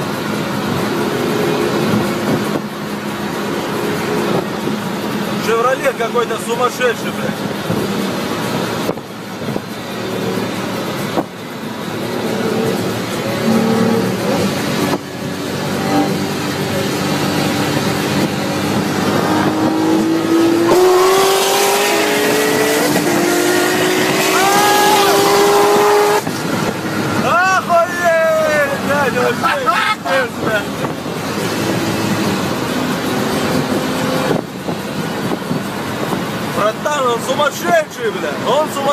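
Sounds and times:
car engine at full throttle: 0.0s - 38.9s
road and wind noise: 0.0s - 38.9s
excited voices: 24.0s - 25.8s, 27.2s - 30.8s.

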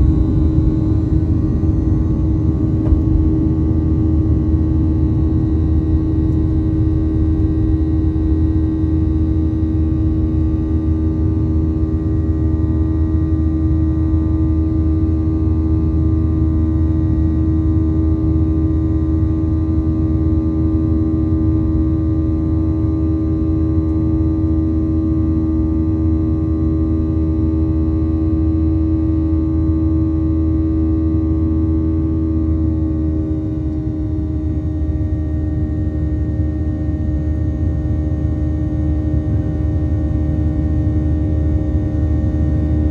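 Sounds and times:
jet engine drone in cabin: 0.0s - 42.9s
steady humming tones: 0.0s - 42.9s.

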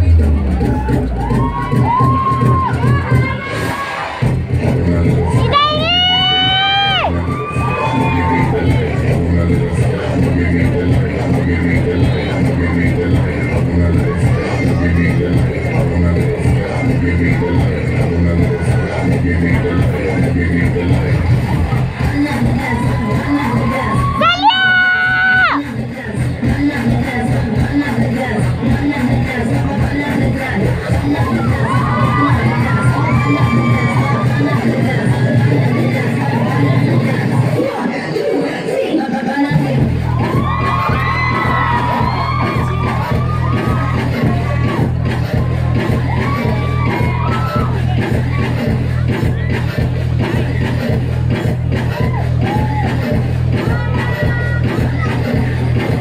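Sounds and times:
crowd cheering: 0.0s - 10.3s, 21.1s - 25.6s, 30.2s - 37.9s, 39.6s - 56.0s.

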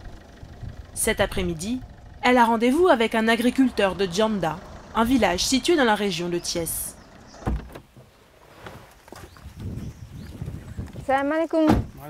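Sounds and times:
car door shutting: 7.1s - 8.8s, 11.6s - 12.0s
soft footsteps and shuffles: 8.4s - 11.5s.

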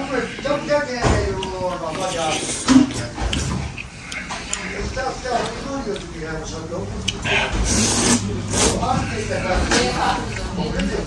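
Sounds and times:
man slurping and chewing noodles: 0.0s - 11.0s.

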